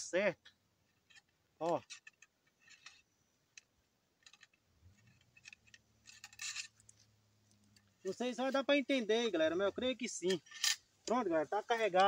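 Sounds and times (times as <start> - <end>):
ramrod clinking in a gun barrel: 1.0 - 6.9, 10.1 - 11.2.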